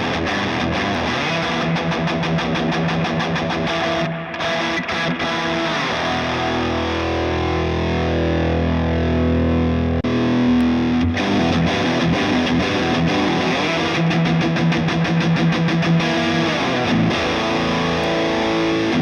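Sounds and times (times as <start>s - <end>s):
distorted electric guitar: 0.0s - 19.0s.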